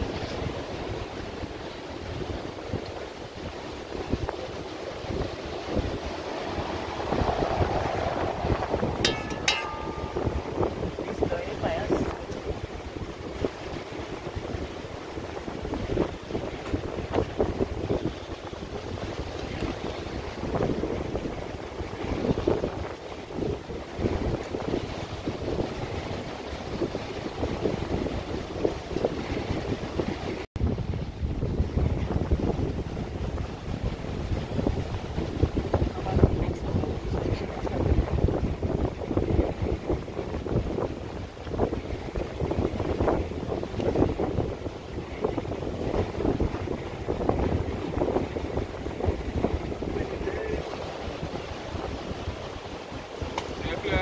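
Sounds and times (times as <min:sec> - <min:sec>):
surf: 0:00.0 - 0:54.0
wind buffeting microphone: 0:00.0 - 0:54.0.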